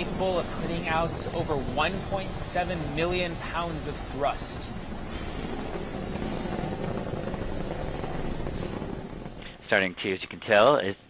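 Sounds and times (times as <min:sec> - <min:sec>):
rocket engines rumbling: 0:00.0 - 0:11.0.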